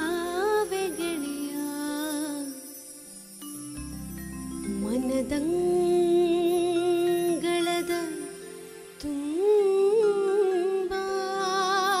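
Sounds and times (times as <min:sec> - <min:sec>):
woman singing wordless vocal line: 0:00.0 - 0:02.8, 0:04.7 - 0:12.0.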